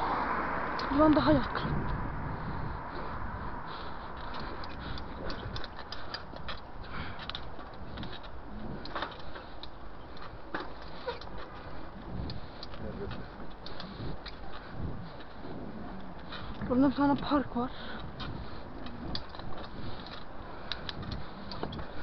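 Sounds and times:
wind and road noise rumble: 0.0 - 22.0
bicycle rattling and clicking: 0.7 - 22.0.

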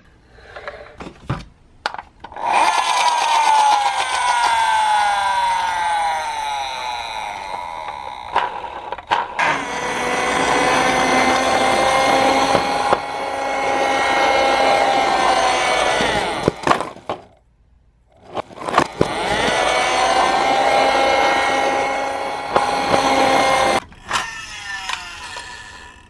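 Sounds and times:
toy car electric motor whining: 2.3 - 17.2, 18.4 - 26.0.

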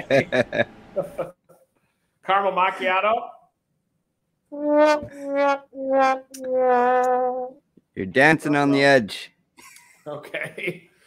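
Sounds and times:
sad trombone sound effect: 4.6 - 7.3.

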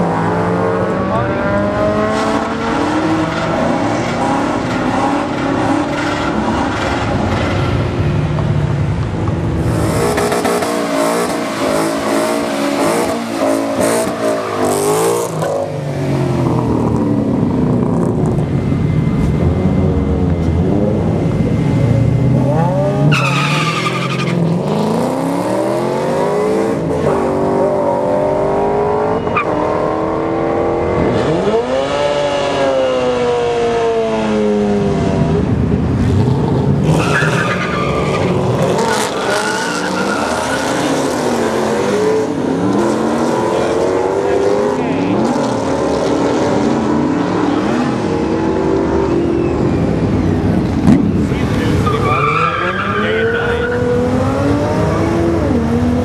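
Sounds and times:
car engines accelerating hard: 0.0 - 56.0.

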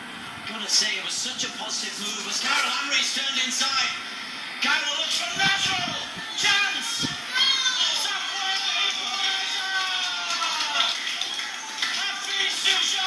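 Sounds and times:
crowd shouting and cheering: 5.0 - 13.0
long high yells: 6.3 - 11.0.

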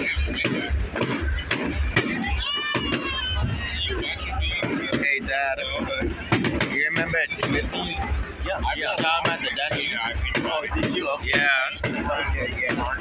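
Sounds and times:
fireworks bangs: 0.0 - 13.0
people talking: 0.0 - 13.0.

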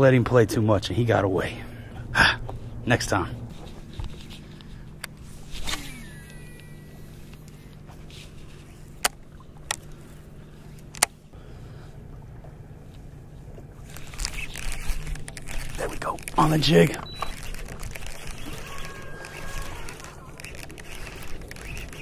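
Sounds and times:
boat motor humming: 0.0 - 22.0
rustling handling noise: 13.6 - 22.0
sharp clicks: 13.9 - 22.0.

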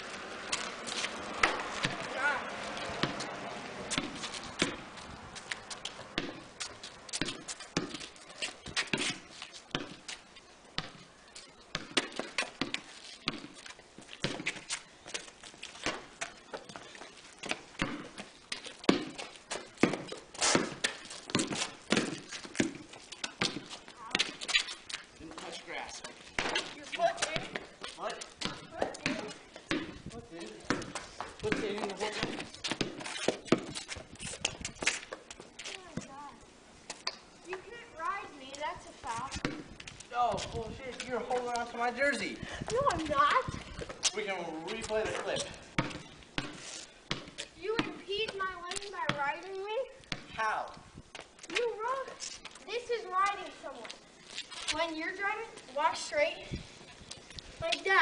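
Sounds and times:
basketball bouncing on concrete: 0.5 - 10.2, 10.8 - 11.1, 11.7 - 36.2, 37.0 - 37.8, 38.5 - 41.8, 42.6 - 53.5
boys talking and calling out: 1.2 - 4.0, 23.2 - 32.6, 35.6 - 36.6, 37.4 - 45.7, 47.4 - 58.0.

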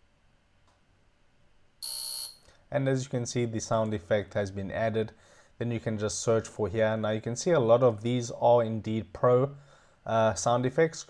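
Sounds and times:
high-pitched electronic beep: 1.8 - 2.4.

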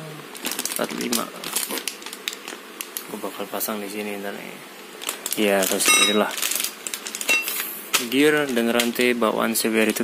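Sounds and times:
metal sprockets clinking in packaging: 5.3 - 7.7.

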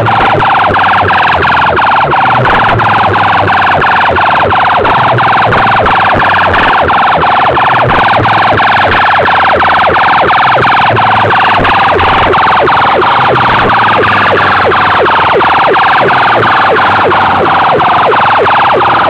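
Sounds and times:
siren-like electronic sound: 0.0 - 19.0.

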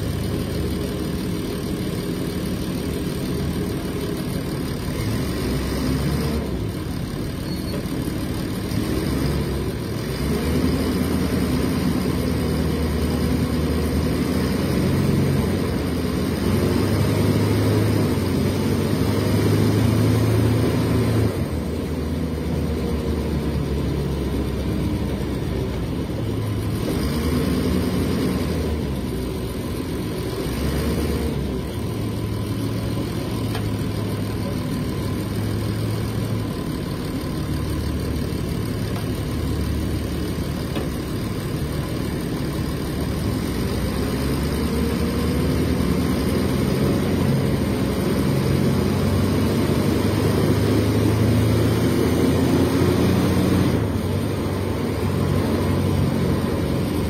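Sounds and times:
bus diesel engine running: 0.0 - 57.0.

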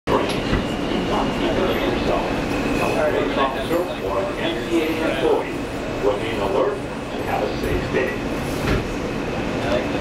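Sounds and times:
subway car rumble and rattle: 0.1 - 10.0.

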